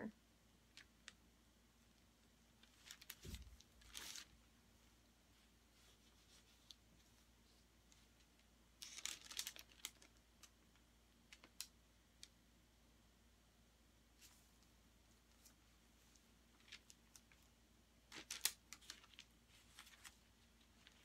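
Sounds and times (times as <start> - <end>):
plastic gloves and paper crinkling: 2.5 - 4.4, 5.3 - 11.7, 15.2 - 21.0.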